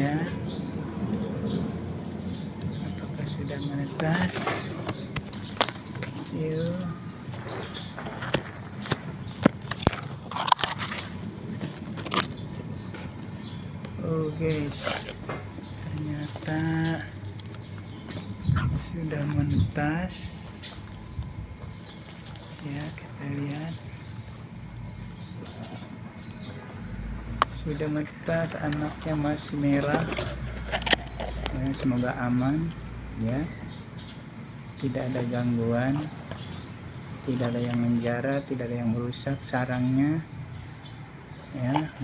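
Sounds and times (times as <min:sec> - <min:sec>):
person speaking: 0:00.0 - 0:00.5, 0:02.7 - 0:05.4, 0:06.0 - 0:07.3, 0:13.8 - 0:21.0, 0:21.7 - 0:26.0, 0:27.2 - 0:33.6, 0:37.2 - 0:40.3
dry grass and leaves rustling: 0:00.0 - 0:38.8
low steady rumble: 0:00.0 - 0:40.4.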